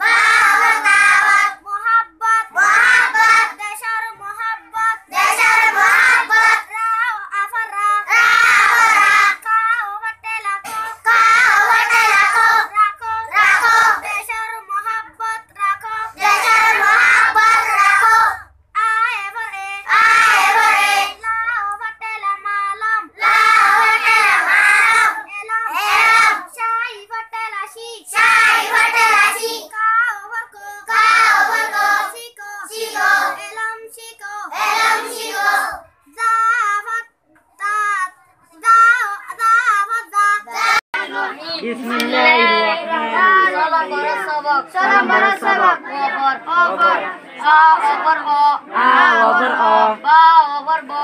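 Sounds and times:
children singing in unison: 0:00.0 - 0:51.0.

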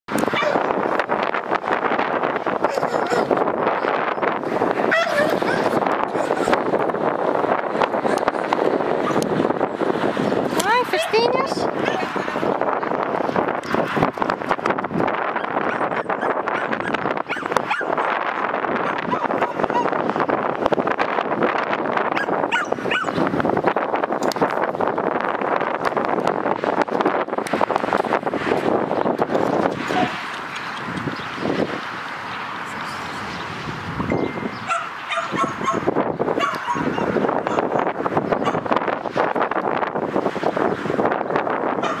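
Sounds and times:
dogs barking and yelping: 0:00.2 - 0:00.9, 0:02.3 - 0:06.8, 0:07.9 - 0:09.4, 0:11.8 - 0:12.2, 0:15.3 - 0:20.1, 0:22.1 - 0:23.3, 0:29.7 - 0:31.2, 0:34.6 - 0:38.7, 0:41.8 - 0:42.0.

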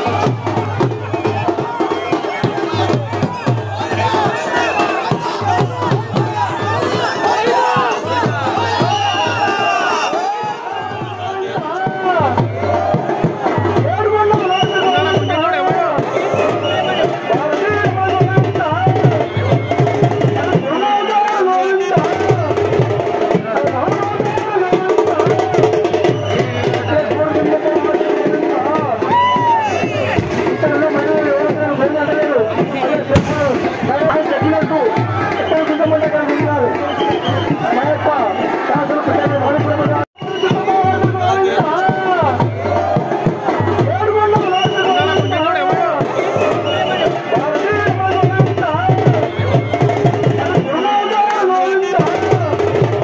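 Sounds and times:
crowd shouting and singing: 0:00.0 - 0:53.0
drumming: 0:00.0 - 0:53.0.

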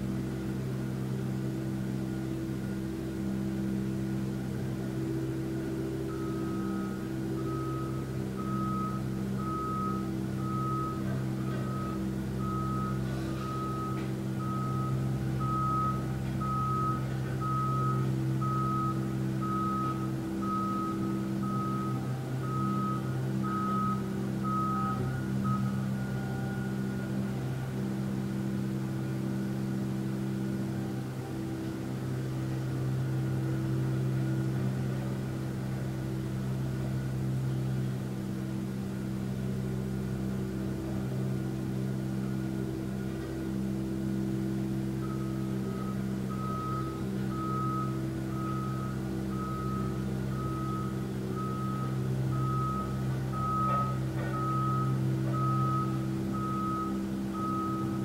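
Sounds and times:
low engine hum: 0:00.0 - 0:58.0
reversing alarm beeping: 0:01.4 - 0:37.5, 0:39.5 - 0:58.0.

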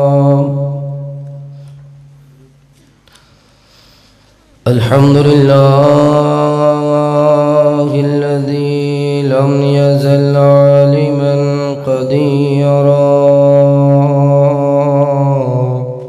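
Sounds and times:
man chanting melodically: 0:00.0 - 0:02.2, 0:04.6 - 0:16.0.

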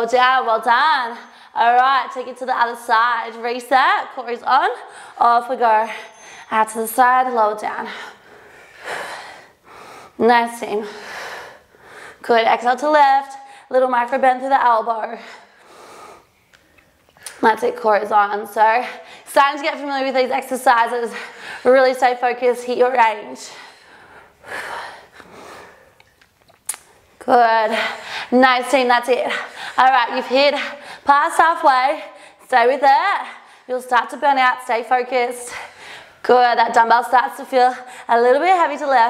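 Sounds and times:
woman breathing hard: 0:05.8 - 0:06.5, 0:07.8 - 0:10.2, 0:10.8 - 0:12.2, 0:23.4 - 0:26.0.

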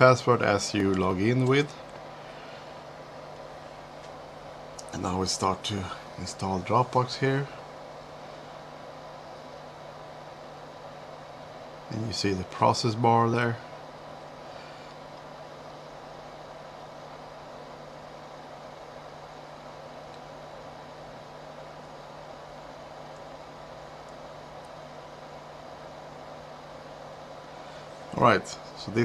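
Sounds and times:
low hum: 0:00.0 - 0:29.0.

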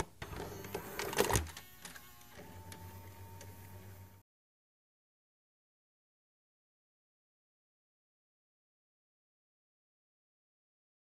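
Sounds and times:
sharp mechanical clicks and clatter: 0:00.0 - 0:03.6.

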